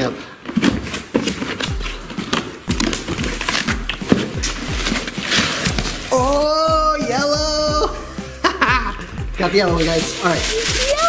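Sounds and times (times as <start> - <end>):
cardboard and plastic wrap rustling: 0.0 - 7.4, 9.2 - 11.0
soft background music beat: 0.7 - 11.0.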